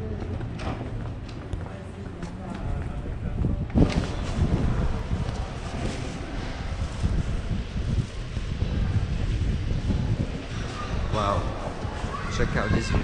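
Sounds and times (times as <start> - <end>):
faint street noise: 0.0 - 13.0
wind buffeting microphone: 0.0 - 13.0.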